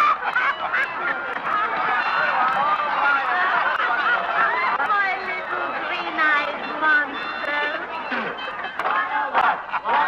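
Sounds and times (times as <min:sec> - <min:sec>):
shrill voices cackling and laughing: 0:00.0 - 0:10.0.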